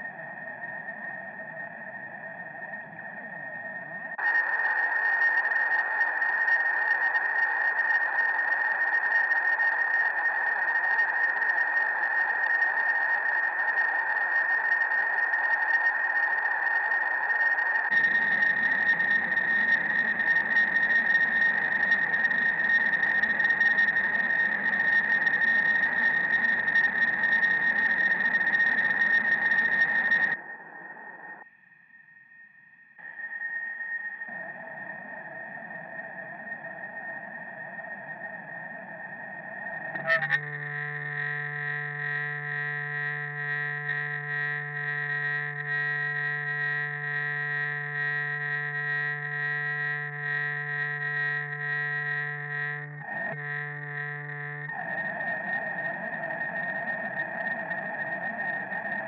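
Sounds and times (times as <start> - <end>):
electric guitar feedback noise: 4.2 - 30.4, 34.3 - 59.0
steady high tone: 16.8 - 31.4, 39.9 - 54.7.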